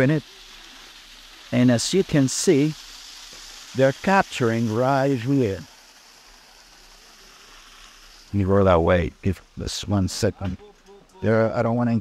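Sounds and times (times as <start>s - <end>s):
water running through channel: 0.0s - 12.0s.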